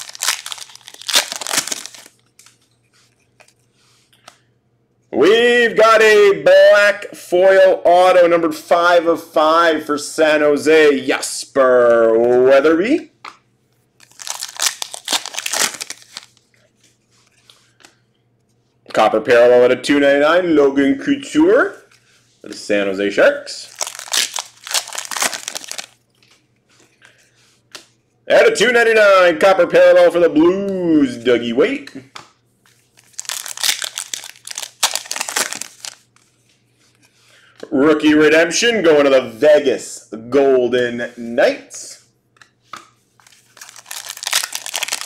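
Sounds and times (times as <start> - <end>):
card wrapping crinkling: 0.0 - 3.6, 14.0 - 17.8, 23.6 - 26.0, 32.7 - 36.4, 43.2 - 45.0.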